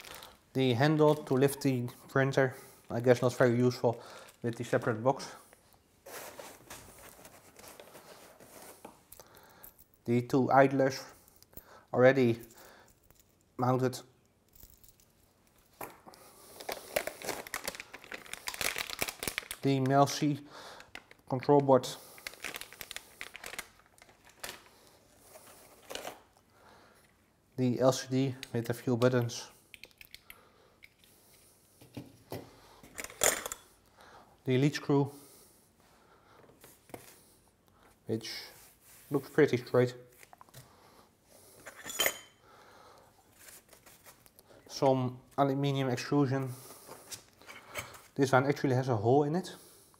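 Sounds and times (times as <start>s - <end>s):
plastic bags crinkling: 0.0s - 0.4s, 3.7s - 5.0s, 16.4s - 26.4s
handling rustle: 6.0s - 9.2s
metal lengths clinking together: 41.7s - 42.3s.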